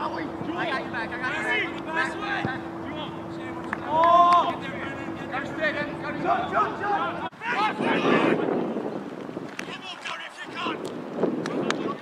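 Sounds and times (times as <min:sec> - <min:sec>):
distant players shouting: 0:00.0 - 0:08.8
wind on microphone: 0:07.3 - 0:12.0.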